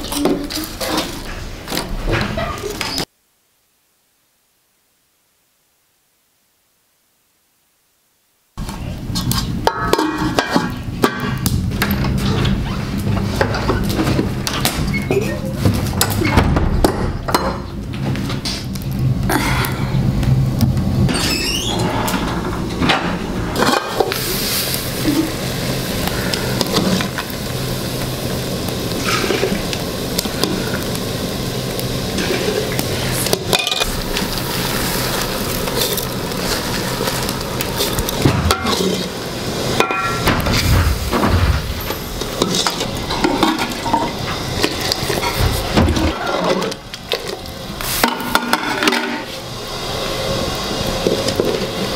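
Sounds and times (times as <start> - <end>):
steaming pot and fire rushing: 0.0 - 3.1, 8.6 - 51.9
metal pots and utensils clinking: 9.2 - 11.4, 22.8 - 24.2, 32.2 - 34.0, 35.7 - 40.6, 41.2 - 47.4, 48.0 - 49.3
low hum: 36.7 - 46.2
metal ladle scraping a pot: 37.8 - 39.2, 41.8 - 44.1.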